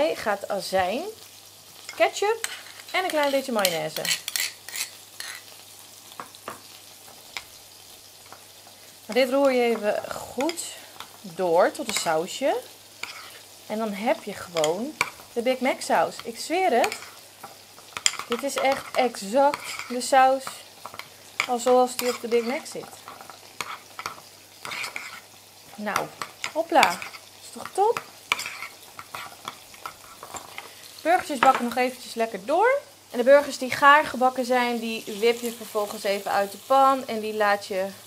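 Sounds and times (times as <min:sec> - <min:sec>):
burger patties sizzling: 0:00.0 - 0:38.0
spoon stirring thick sauce: 0:16.8 - 0:25.3, 0:26.0 - 0:30.7.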